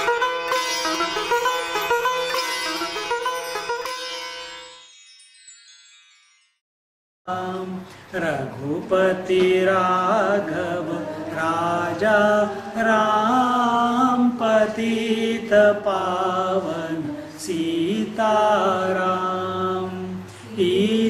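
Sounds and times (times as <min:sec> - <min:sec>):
man chanting: 0:07.3 - 0:21.0.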